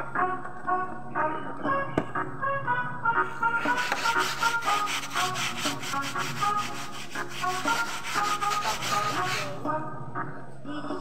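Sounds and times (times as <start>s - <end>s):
music playing: 0.0s - 11.0s
carpet being scrubbed: 3.4s - 9.7s.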